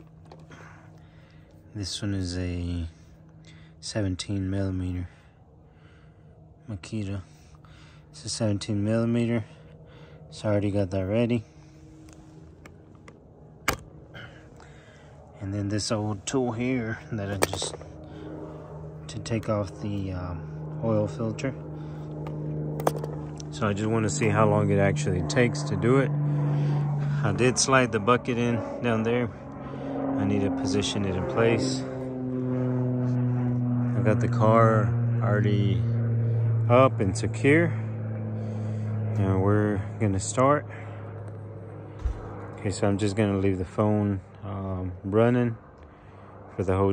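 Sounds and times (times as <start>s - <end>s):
low machine hum: 0.0s - 46.9s.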